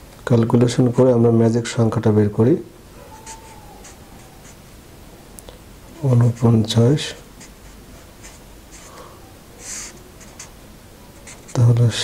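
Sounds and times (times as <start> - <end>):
marker pen scratching on paper: 3.1 - 4.6, 6.0 - 9.0, 9.6 - 11.8.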